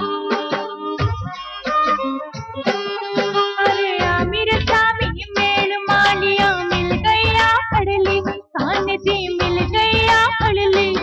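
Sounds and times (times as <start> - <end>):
steady beat: 0.0 - 11.0.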